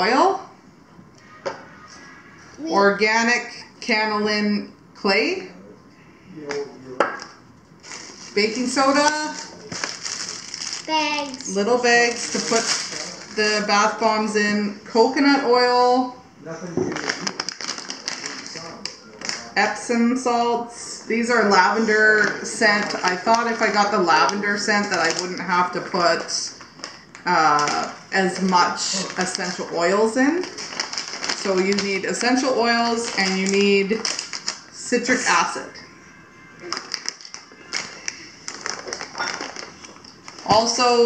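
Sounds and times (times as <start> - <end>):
plastic pouch crinkling: 7.8 - 14.0, 16.9 - 19.6, 22.2 - 34.8, 36.6 - 40.8.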